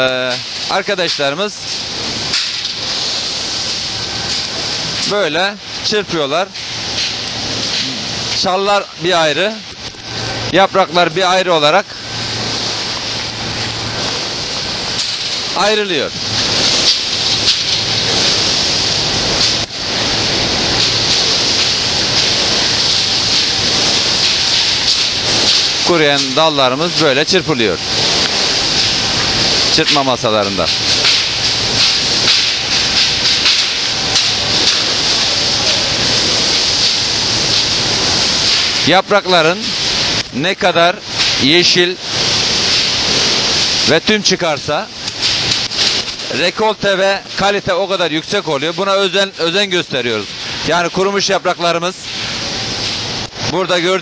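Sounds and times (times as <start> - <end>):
low steady hum: 0.0 - 54.0
steady hiss: 0.0 - 54.0.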